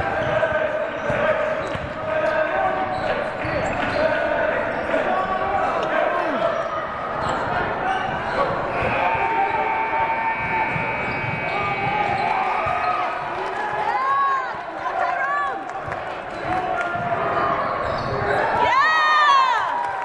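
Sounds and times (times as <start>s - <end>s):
sneakers squeaking: 0.0s - 14.1s, 15.1s - 19.5s
echoing voices: 0.0s - 19.7s
basketballs bouncing on hardwood: 10.4s - 13.8s.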